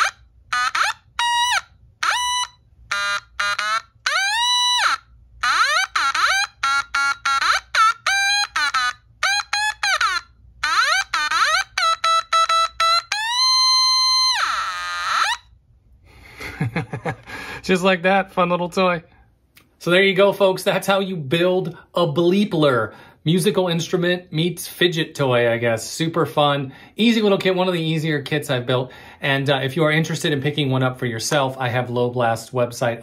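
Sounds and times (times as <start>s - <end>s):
held electronic tone: 0.0s - 15.5s.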